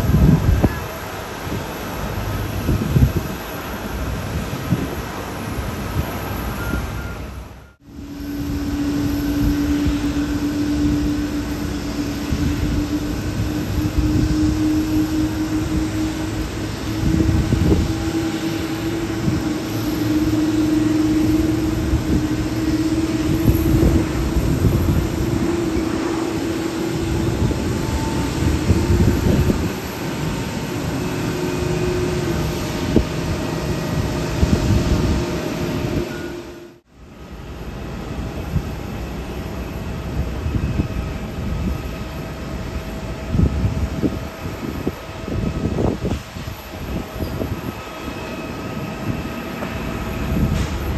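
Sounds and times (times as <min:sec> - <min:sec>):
jet engines rumbling and whining: 0:00.0 - 0:50.9.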